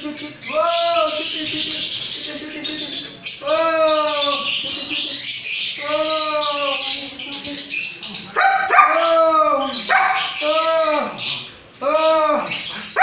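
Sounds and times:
dog barking: 8.4 - 9.1, 9.9 - 10.4.

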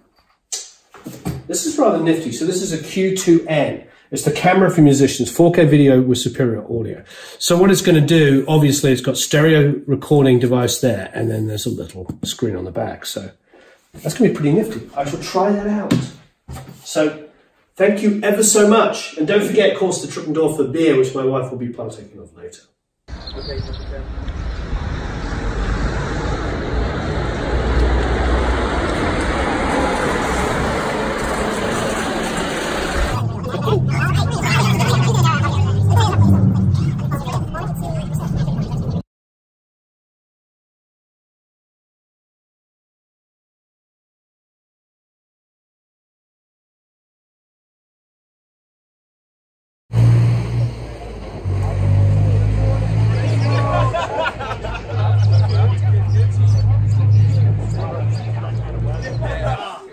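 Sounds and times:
road vehicle rumble and hiss: 23.2 - 33.2, 50.0 - 59.5
faint voices: 33.0 - 39.0, 50.9 - 59.9
diesel engine idling: 50.0 - 59.6.

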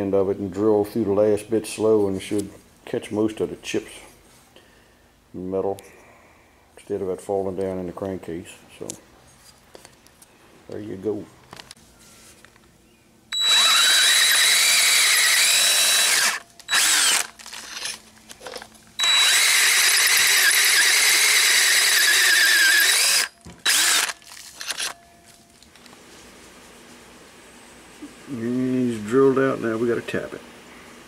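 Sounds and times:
electric drill whining: 13.3 - 25.0.

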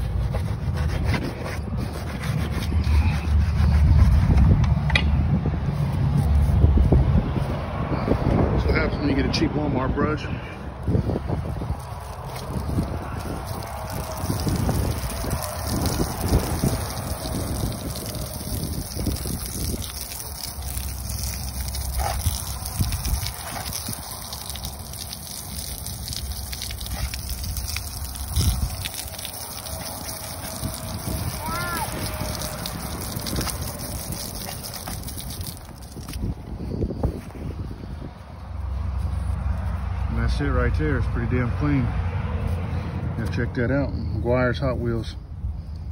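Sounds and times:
hose spraying water on wheel: 0.0 - 5.0, 10.8 - 37.2.

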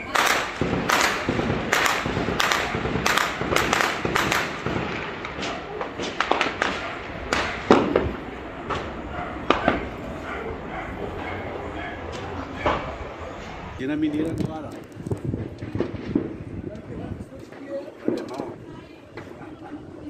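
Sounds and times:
gunshots: 0.0 - 10.1.

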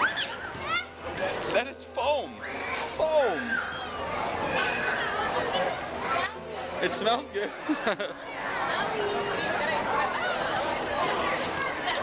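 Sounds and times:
children playing and calling out: 0.0 - 1.1, 2.4 - 6.6, 7.6 - 12.0
people chattering: 0.0 - 12.0.

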